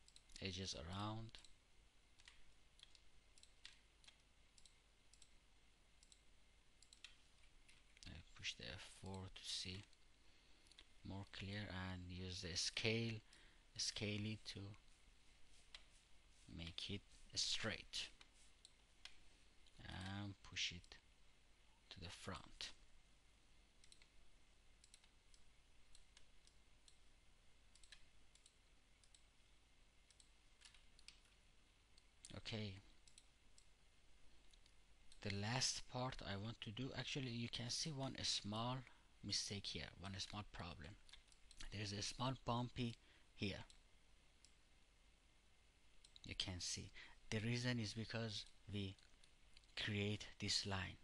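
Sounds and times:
room hiss: 0.0s - 51.0s
faint mouse clicks: 2.2s - 5.4s, 6.0s - 8.2s, 9.0s - 11.5s, 12.8s - 15.0s, 23.8s - 24.2s, 24.8s - 27.1s, 27.7s - 29.3s, 30.0s - 33.7s, 41.0s - 43.8s.

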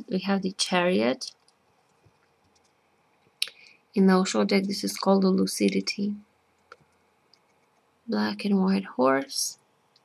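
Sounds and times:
woman speaking: 0.0s - 1.3s, 3.4s - 6.3s, 8.1s - 9.6s.

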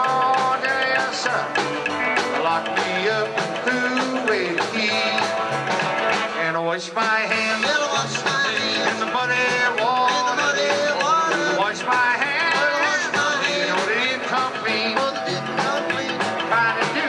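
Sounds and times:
live rock and roll band: 0.0s - 17.0s.

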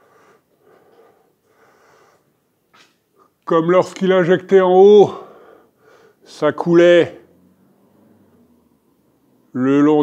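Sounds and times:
soft breathing close to microphone: 0.0s - 2.5s, 5.2s - 6.2s.

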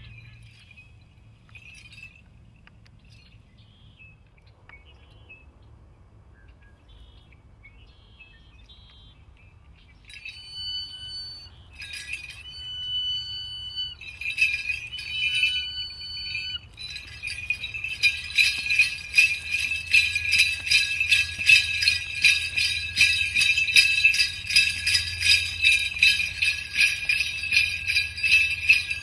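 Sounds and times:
bells jingling on dancer: 0.0s - 3.9s, 9.7s - 29.0s.

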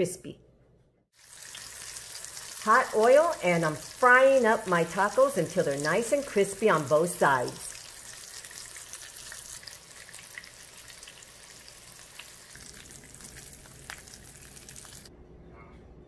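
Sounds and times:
tacos sizzling in hot oil: 1.1s - 15.1s.

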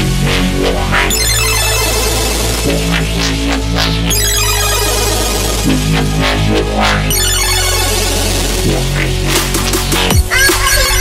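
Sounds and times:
hard electronic dance music: 1.1s - 11.0s.

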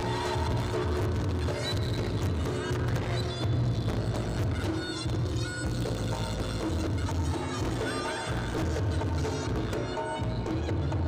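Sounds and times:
traditional ensemble music: 0.0s - 11.0s.

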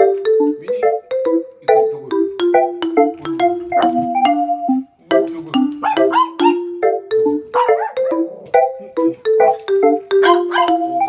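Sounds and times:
marimba background music: 0.0s - 11.0s
small dog yipping: 5.8s - 6.6s, 7.6s - 8.1s, 10.2s - 10.8s.

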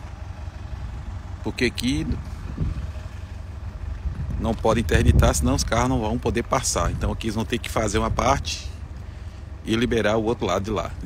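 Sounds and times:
road roller engine rumbling: 0.0s - 11.0s.

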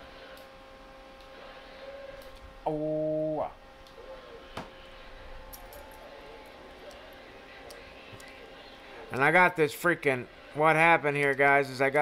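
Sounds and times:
equipment hum with whining tones: 0.0s - 12.0s.

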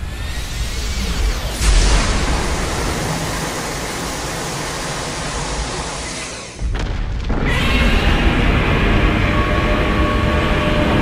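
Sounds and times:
energy beam rushing hiss: 0.0s - 6.6s.

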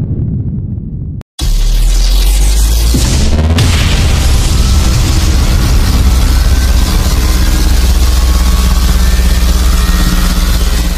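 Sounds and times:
low rumbling buzzing drone: 0.0s - 10.9s.

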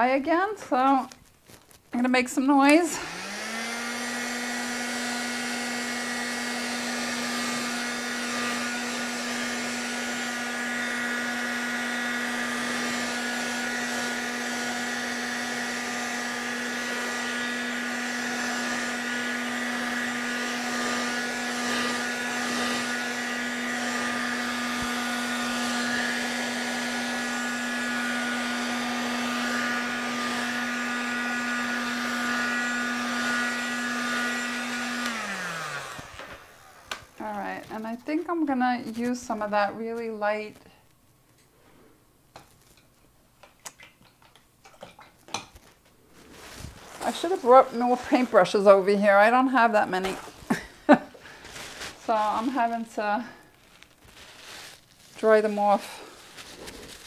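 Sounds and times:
heat gun motor hum: 2.6s - 37.6s, 47.0s - 54.0s, 55.1s - 57.0s.

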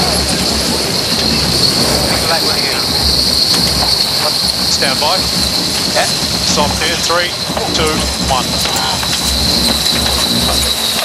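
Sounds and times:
faint voices: 0.0s - 11.0s
high-pitched whine: 0.0s - 11.0s.

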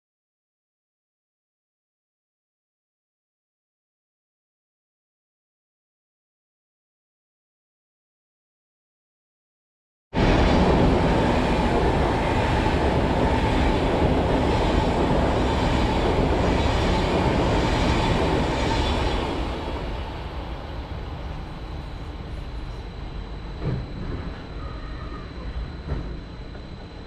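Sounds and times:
train passing at speed: 10.2s - 27.0s
faint high tone: 24.0s - 25.9s.

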